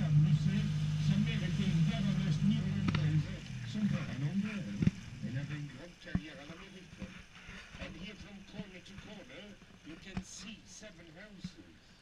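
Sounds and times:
low voices: 0.0s - 11.7s
boat motor humming: 0.0s - 12.0s.

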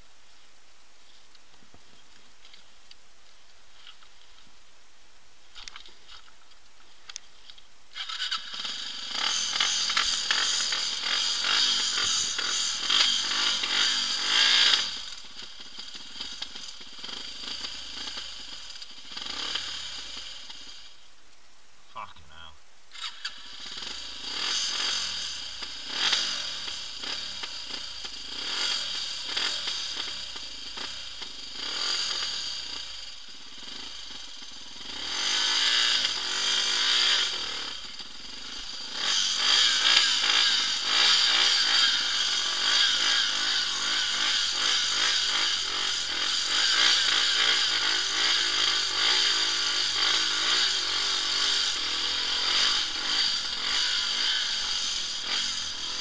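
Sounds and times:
motorcycle engine revving: 7.9s - 21.1s, 22.9s - 56.0s.

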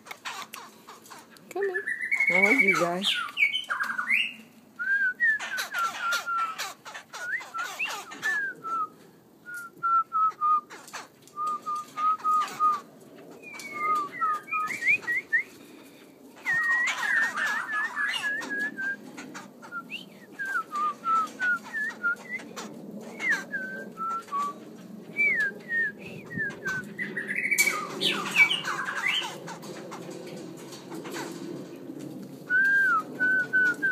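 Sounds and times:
songbird whistling: 1.8s - 8.9s, 13.4s - 15.5s, 16.4s - 19.0s, 19.6s - 22.5s, 23.1s - 24.6s.

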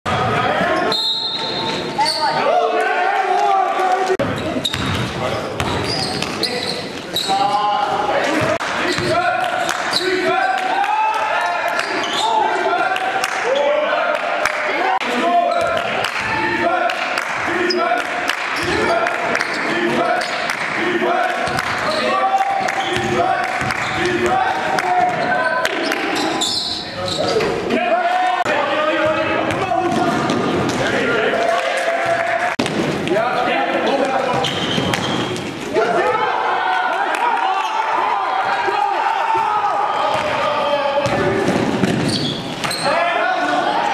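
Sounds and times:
sneakers squeaking: 0.1s - 2.4s, 4.2s - 10.6s, 11.4s - 12.6s, 15.5s - 15.9s, 17.6s - 18.0s, 18.6s - 20.5s, 21.4s - 24.1s, 24.9s - 27.7s, 32.6s - 35.7s, 41.0s - 43.0s
voices echoing in hall: 0.1s - 43.9s
basketball bouncing on court: 4.2s - 6.4s, 29.0s - 30.9s, 41.0s - 42.7s
basketball bouncing on gym floor: 4.6s - 6.4s.

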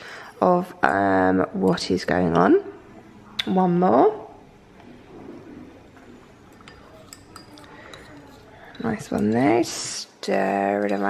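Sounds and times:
spatula clinking against glass: 6.5s - 9.4s.

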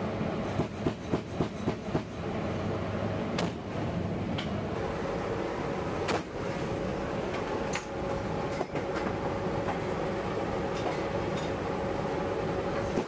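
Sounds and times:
constant hum: 0.0s - 13.0s
turboprop engines droning: 2.2s - 12.9s.

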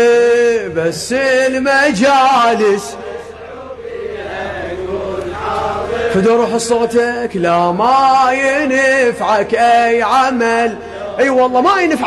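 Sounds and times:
men chanting together: 0.0s - 12.0s
steady low hum: 0.0s - 12.0s.

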